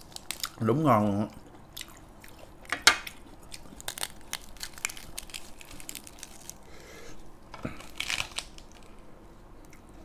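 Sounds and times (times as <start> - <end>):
lettuce crinkling and crackling: 0.0 - 6.7, 7.4 - 9.0.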